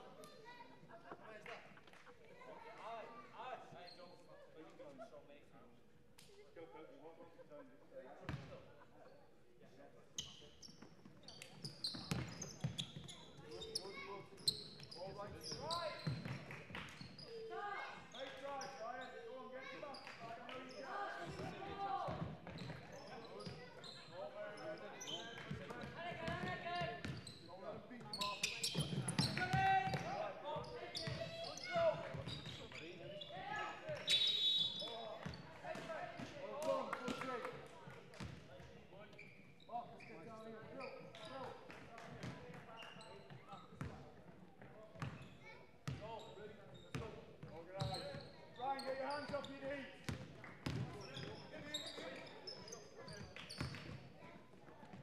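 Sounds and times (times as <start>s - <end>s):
indistinct shouting and talk: 0.0s - 55.0s.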